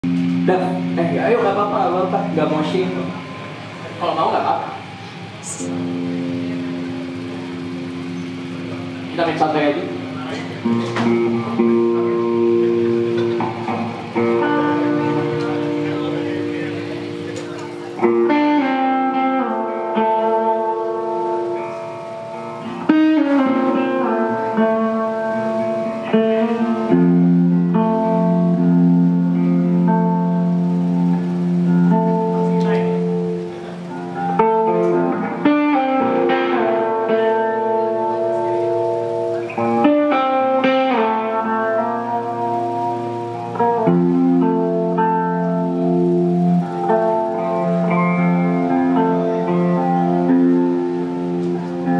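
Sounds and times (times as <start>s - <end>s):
electric guitar note ringing: 0.0s - 51.9s.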